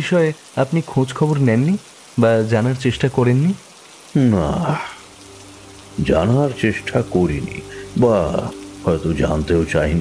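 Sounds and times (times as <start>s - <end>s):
steady rain falling: 0.0s - 10.0s
person speaking: 5.9s - 10.0s.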